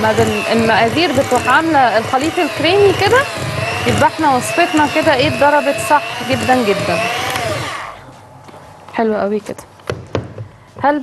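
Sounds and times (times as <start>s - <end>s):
electric hand mixer whining: 0.0s - 8.1s.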